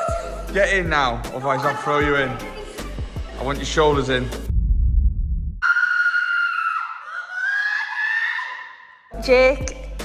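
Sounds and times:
high-pitched scream: 0:05.6 - 0:09.1.

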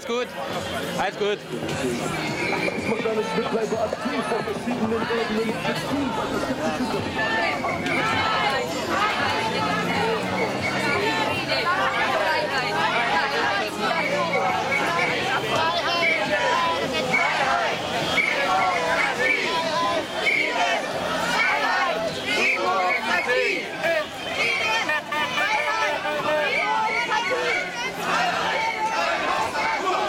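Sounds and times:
crowd chattering: 0:00.0 - 0:30.0.

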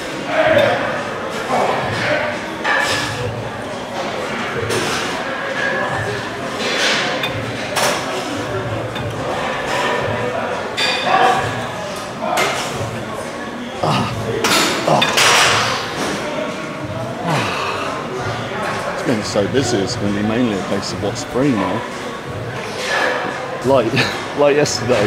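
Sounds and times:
indistinct voices in echoing hall: 0:00.0 - 0:25.0.

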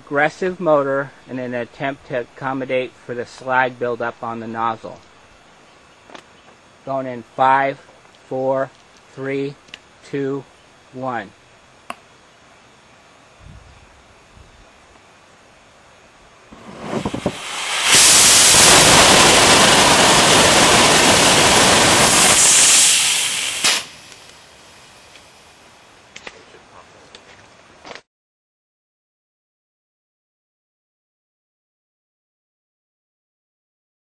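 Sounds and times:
rocket motor roaring: 0:16.5 - 0:25.4
sputtering pops: 0:16.6 - 0:24.4.

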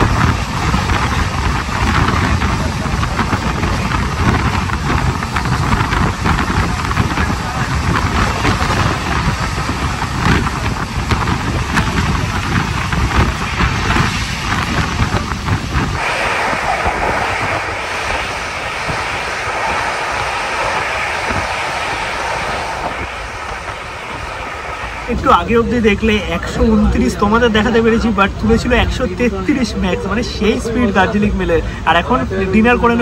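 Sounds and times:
wheels clattering on track: 0:00.0 - 0:16.0
hissy rushing: 0:00.0 - 0:27.6
train rumbling: 0:00.0 - 0:33.0.

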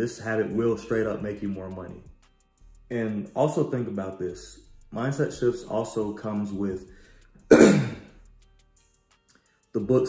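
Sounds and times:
man clearing throat: 0:07.5 - 0:08.1.

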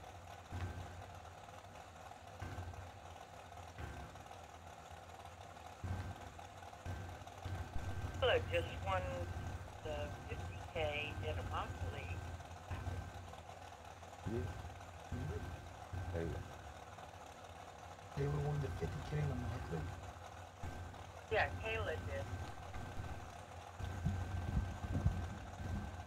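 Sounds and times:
dragster engines idling: 0:00.0 - 0:26.0
faint voices: 0:08.1 - 0:13.0, 0:14.3 - 0:14.5, 0:15.2 - 0:15.4, 0:16.1 - 0:16.4, 0:18.2 - 0:19.9, 0:21.3 - 0:23.1.

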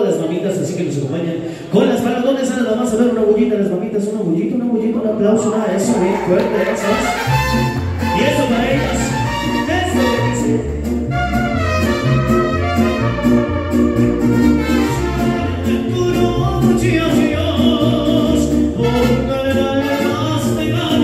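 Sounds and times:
mariachi band playing: 0:05.3 - 0:21.0
guitarron bass line: 0:05.8 - 0:21.0
trumpets playing melody: 0:06.4 - 0:16.4, 0:18.8 - 0:21.0.

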